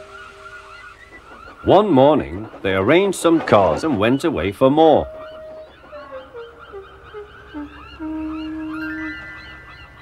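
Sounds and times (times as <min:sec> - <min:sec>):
held notes melody stepping down: 0:04.6 - 0:10.0
sustained chord: 0:05.1 - 0:10.0.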